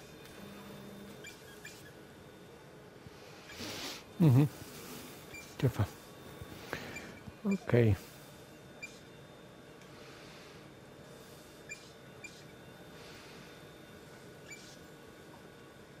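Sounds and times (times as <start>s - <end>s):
equipment hiss and hum: 0.0s - 16.0s.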